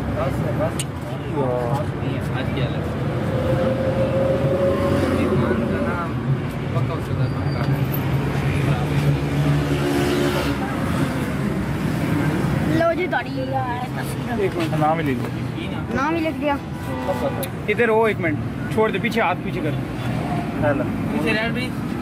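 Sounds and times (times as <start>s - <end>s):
indistinct voices: 1.4s - 7.8s.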